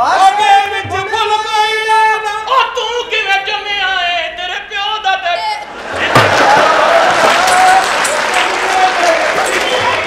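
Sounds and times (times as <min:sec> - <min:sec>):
audience applause and cheering: 0:05.7 - 0:10.0.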